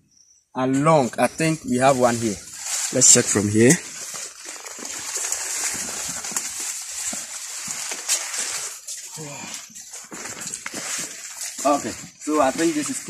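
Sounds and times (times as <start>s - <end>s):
leaves rustling and crackling: 0.8s - 13.0s.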